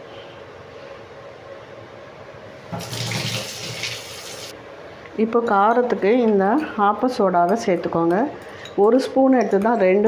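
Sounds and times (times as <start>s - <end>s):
water running from a tap: 2.7s - 4.5s.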